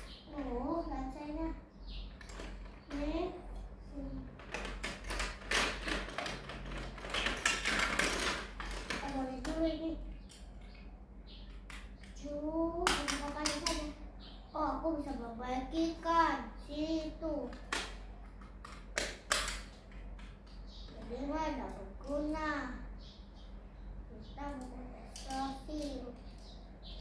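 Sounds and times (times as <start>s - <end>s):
girl talking: 0.3s - 1.7s, 2.9s - 4.4s, 8.9s - 10.1s, 12.2s - 17.6s, 20.9s - 22.9s, 24.1s - 26.2s
plastic toys clicking and rattling: 2.1s - 3.1s, 4.2s - 10.6s, 12.8s - 14.0s, 17.4s - 22.4s, 24.5s - 26.5s.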